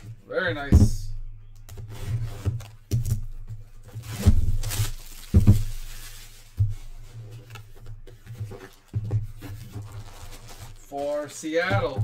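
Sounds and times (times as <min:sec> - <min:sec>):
plastic wrap crinkling: 0:01.6 - 0:12.0
cardboard box thumps: 0:02.9 - 0:05.9.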